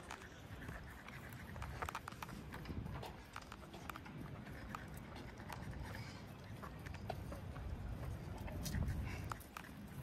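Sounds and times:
footsteps on pavement: 0.0 - 10.0.

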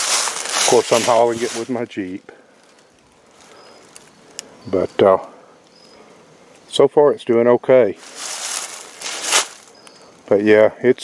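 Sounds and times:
footsteps crunching dry leaves: 0.0 - 4.2, 8.0 - 10.2.

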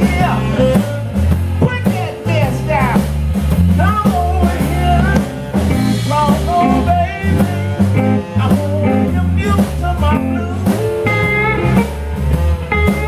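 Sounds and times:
blues band playing: 0.0 - 13.0
lead guitar bending notes: 4.3 - 13.0.

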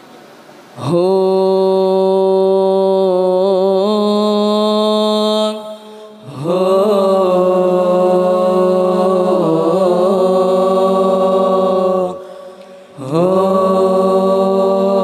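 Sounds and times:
man singing unaccompanied: 0.8 - 12.3, 13.0 - 15.0.

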